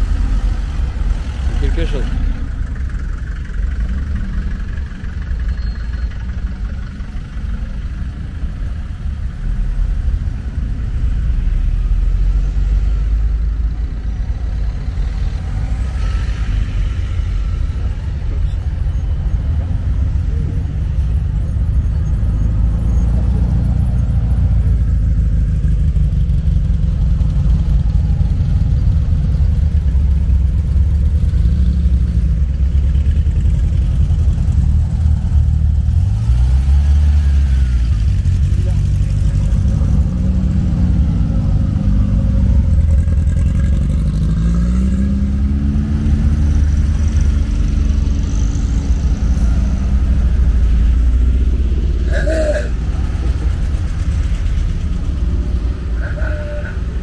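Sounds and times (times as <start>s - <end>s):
cars driving past: 0.0s - 57.0s
low traffic rumble: 0.0s - 57.0s.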